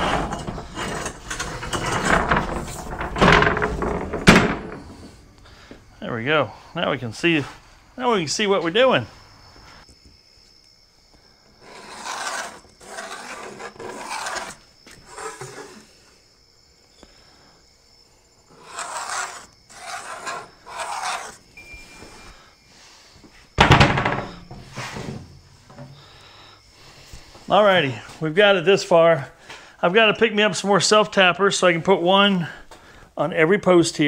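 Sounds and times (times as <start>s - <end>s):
loud clatter: 0.0s - 5.1s
scraping strokes on plywood: 11.6s - 16.0s, 18.5s - 21.4s.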